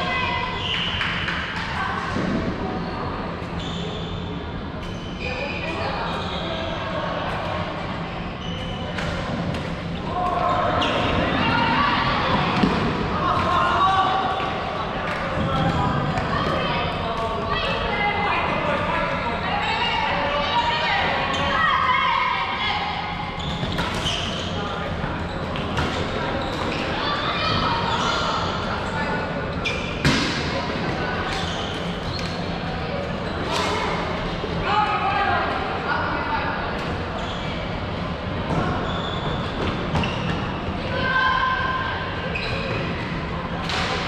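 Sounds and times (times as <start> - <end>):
players calling and shouting: 0.0 - 44.0.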